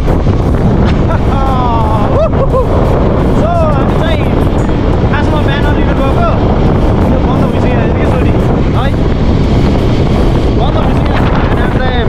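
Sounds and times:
motorcycle engine: 0:00.0 - 0:12.0
wind rush on microphone: 0:00.0 - 0:12.0
voice: 0:01.0 - 0:02.8, 0:03.4 - 0:04.4, 0:05.1 - 0:06.4, 0:07.0 - 0:09.0, 0:10.5 - 0:12.0.

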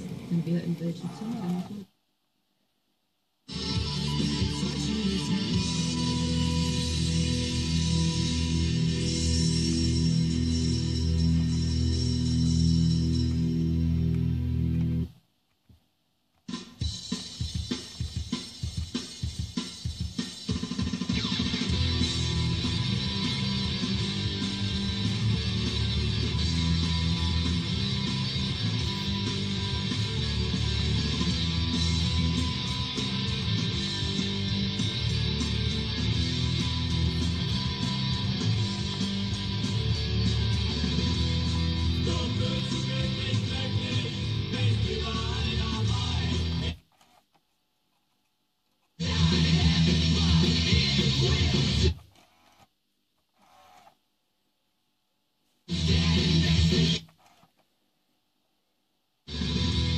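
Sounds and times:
guitar music on car radio: 0:21.0 - 0:46.8, 0:49.0 - 0:52.0.

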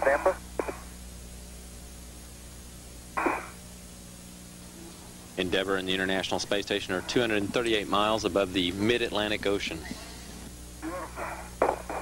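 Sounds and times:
radio noise burst: 0:00.0 - 0:01.0, 0:03.2 - 0:03.6, 0:06.7 - 0:12.0
radio channel hum and hiss: 0:00.0 - 0:12.0.

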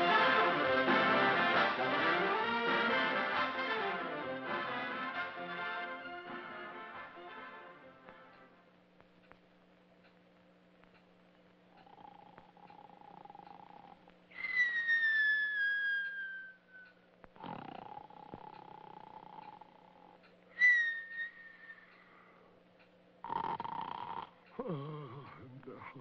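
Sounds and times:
rasping snore: 0:11.8 - 0:14.0, 0:17.4 - 0:20.2, 0:23.2 - 0:25.4
descending whistle: 0:14.3 - 0:16.9, 0:20.5 - 0:22.1.

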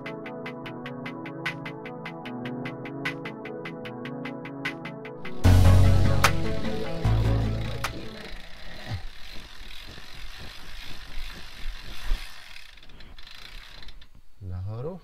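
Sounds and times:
short rising tone: 0:05.2 - 0:08.6
bicycle freehub clicking: 0:07.7 - 0:14.4.

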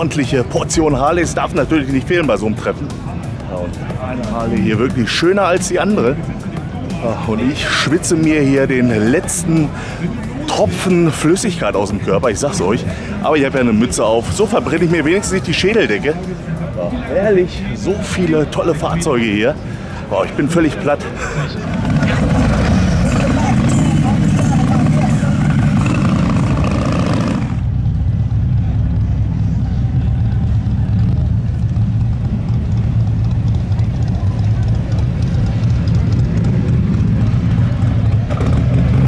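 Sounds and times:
outdoor bustle: 0:00.0 - 0:39.0
car engine rumbling past: 0:21.0 - 0:39.0.

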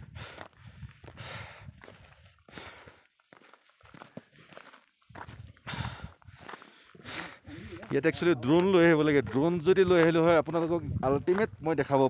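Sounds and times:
footsteps on dry grass and stones: 0:00.0 - 0:12.0.

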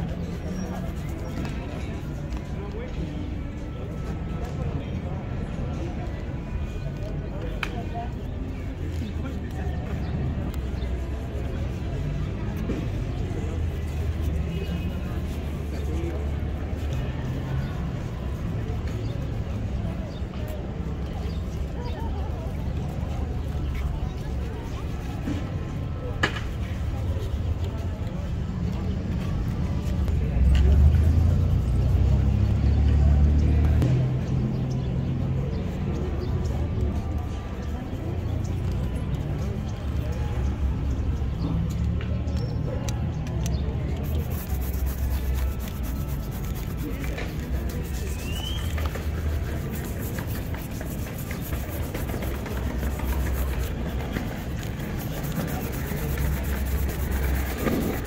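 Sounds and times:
vehicle engine rumbling: 0:40.3 - 0:58.0
brush buffing leather shoe: 0:44.0 - 0:58.0.

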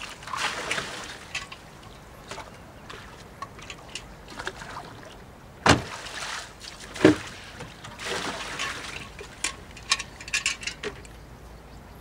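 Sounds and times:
water splashing and trickling: 0:00.0 - 0:11.2.

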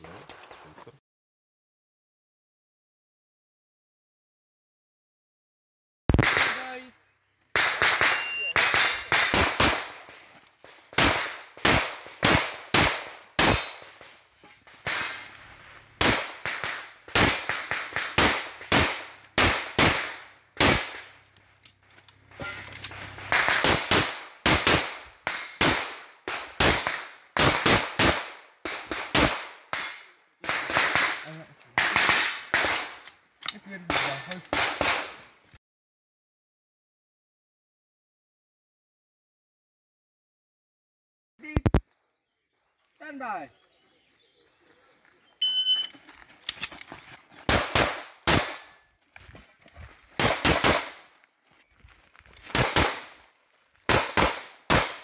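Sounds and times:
pistol gunshots: 0:06.1 - 0:06.8, 0:07.6 - 0:10.1, 0:10.9 - 0:14.1, 0:16.0 - 0:21.2, 0:23.2 - 0:33.0, 0:33.9 - 0:35.2, 0:47.5 - 0:48.8, 0:50.2 - 0:51.1, 0:52.5 - 0:53.2, 0:53.9 - 0:55.0.

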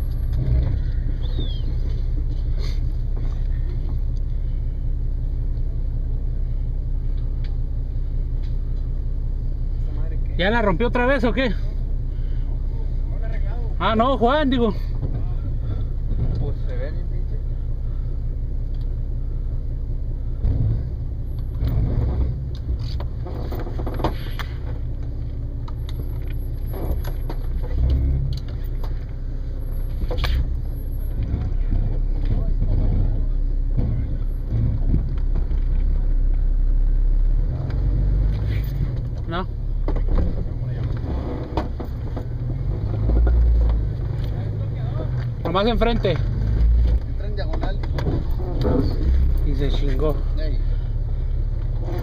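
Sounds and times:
engine low rumble: 0:00.0 - 0:52.0.

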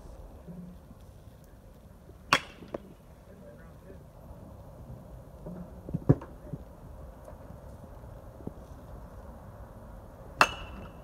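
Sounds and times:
baseball bat striking ball: 0:02.3 - 0:02.8, 0:10.4 - 0:11.0.

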